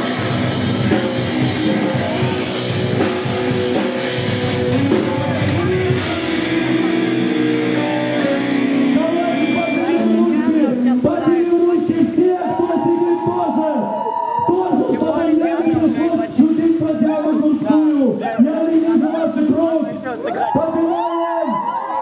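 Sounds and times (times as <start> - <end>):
distorted electric guitars: 0.0 - 13.5
drum kit: 0.0 - 13.6
voices: 4.7 - 22.0.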